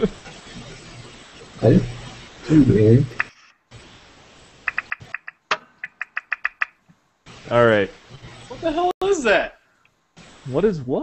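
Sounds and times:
sharp clicks on microphone: 3.2s - 3.4s, 4.7s - 6.8s.

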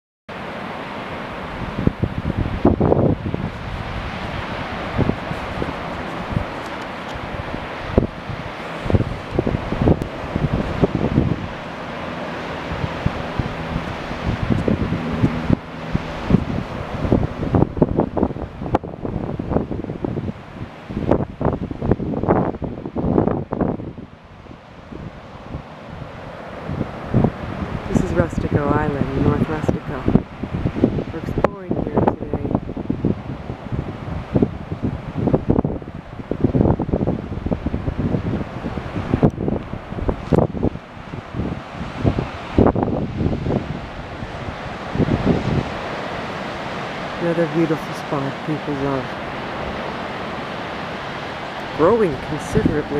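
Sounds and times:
surf breaking on beach: 0.3s - 52.9s
wind buffeting microphone: 0.3s - 52.9s.

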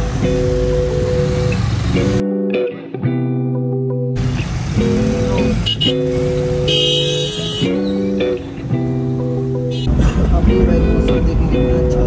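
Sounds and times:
steady traffic noise: 0.0s - 2.2s, 4.0s - 12.0s
vehicle horns honking: 5.4s - 8.2s, 9.6s - 10.0s.

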